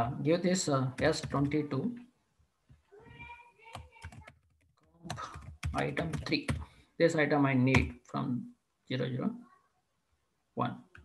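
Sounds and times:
keyboard typing: 0.9 - 1.7, 3.6 - 6.7.

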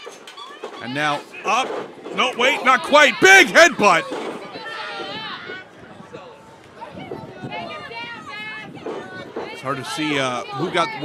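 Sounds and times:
spectators chatter: 0.0 - 11.0.

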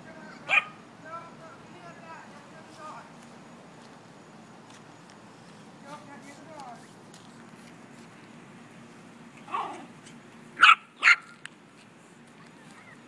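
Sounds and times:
small dog barking: 0.4 - 0.8, 9.4 - 9.9, 10.6 - 11.4.

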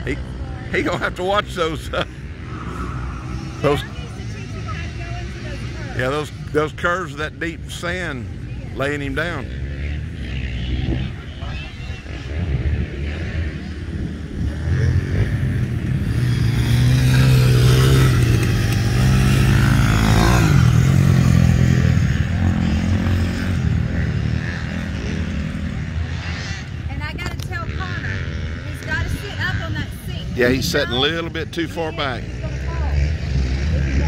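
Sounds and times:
dirt bike passing by: 0.0 - 34.0
distant dirt bikes running: 0.0 - 34.0.

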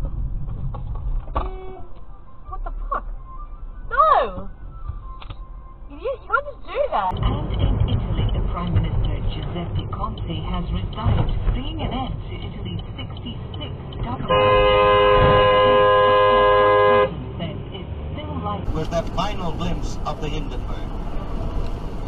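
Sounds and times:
road noise: 0.0 - 22.0
car horn blast: 14.2 - 17.2.

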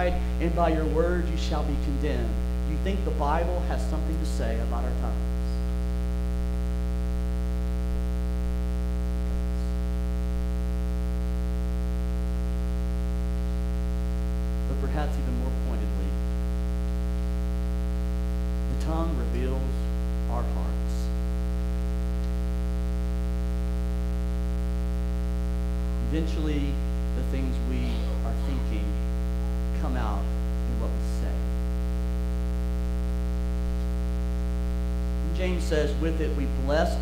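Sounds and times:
man speaking: 0.0 - 5.6, 14.7 - 16.2, 18.7 - 21.2, 25.9 - 29.1, 29.8 - 31.6, 35.2 - 37.0
electrical mains hum: 0.0 - 37.0
short voice sound: 27.6 - 29.0.

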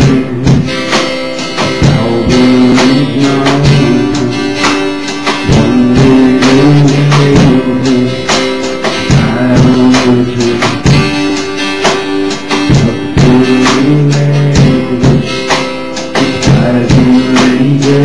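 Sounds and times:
held low notes: 0.0 - 15.5
strummed acoustic guitar: 0.0 - 18.0.

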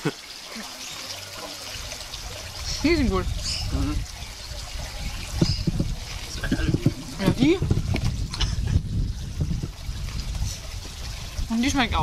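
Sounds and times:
wind on microphone: 1.7 - 12.0.

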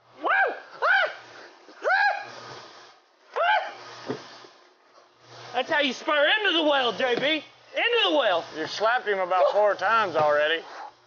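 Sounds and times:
man yelling: 7.9 - 10.2.

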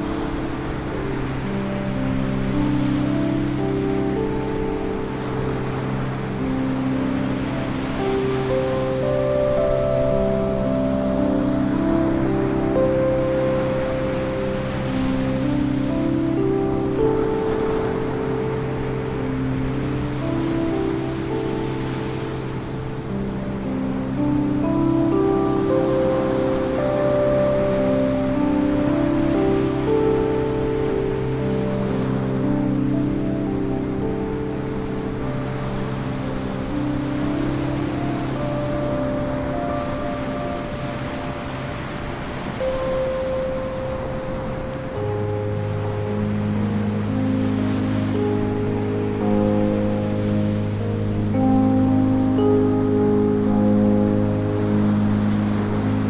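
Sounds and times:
ocean surf breaking: 0.0 - 56.0
slow ambient music: 0.0 - 56.0.

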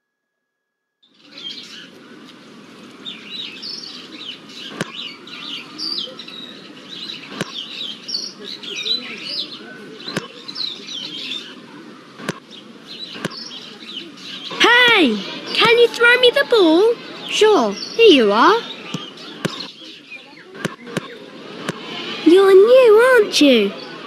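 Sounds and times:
birds chirping: 1.0 - 24.0
murmur of children's voices: 1.1 - 24.0.

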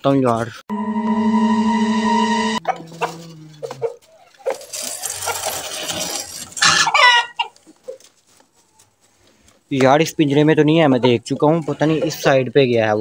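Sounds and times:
chickens clucking and squawking: 2.6 - 5.7, 6.4 - 8.9.

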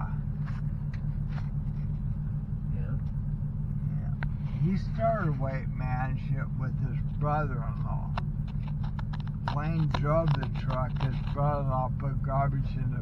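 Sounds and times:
vehicle engines idling: 0.0 - 13.0.

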